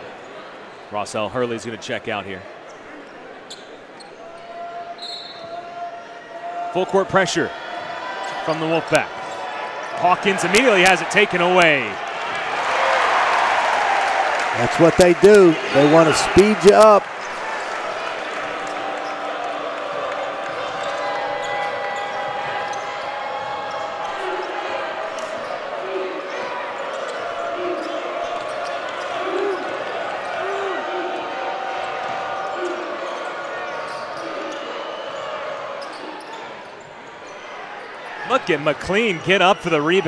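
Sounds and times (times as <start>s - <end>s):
arena crowd murmur: 0.0s - 40.0s.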